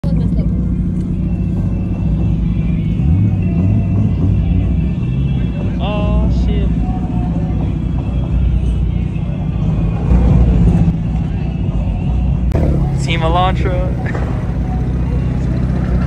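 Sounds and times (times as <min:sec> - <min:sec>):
car exhaust rumble: 0:00.0 - 0:16.0.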